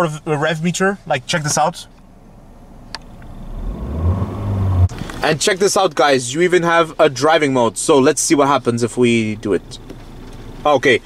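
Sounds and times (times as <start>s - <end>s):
car engine revving: 2.9s - 5.7s.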